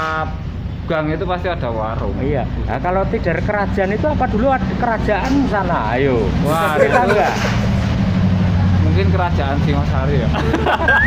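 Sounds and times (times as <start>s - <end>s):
car engine passing: 4.2s - 11.0s.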